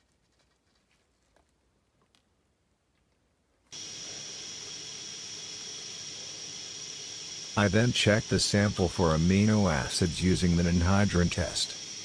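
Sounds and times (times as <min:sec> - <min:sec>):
gas burner hissing: 0:03.7 - 0:12.0.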